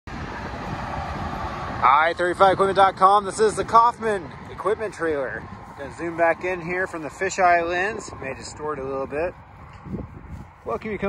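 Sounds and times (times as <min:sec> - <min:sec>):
highway traffic: 0:00.1 - 0:11.0
trucks passing: 0:00.1 - 0:11.0
man speaking: 0:01.8 - 0:09.4, 0:10.6 - 0:11.0.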